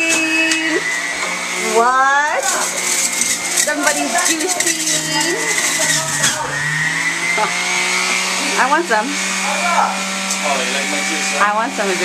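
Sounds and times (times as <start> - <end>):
juicer motor hum and whine: 0.0 - 12.0.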